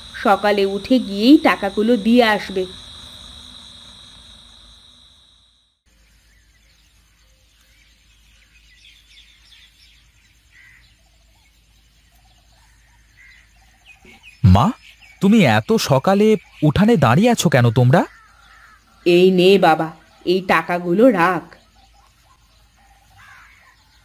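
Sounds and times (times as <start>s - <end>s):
crickets chirring: 0.0s - 24.0s
soft bird chirps: 5.9s - 24.0s.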